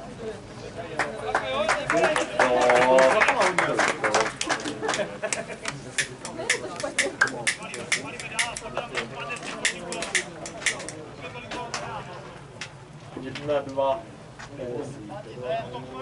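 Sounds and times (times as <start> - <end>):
faint people talking: 0.0 - 16.0
scattered hand claps: 1.0 - 11.9.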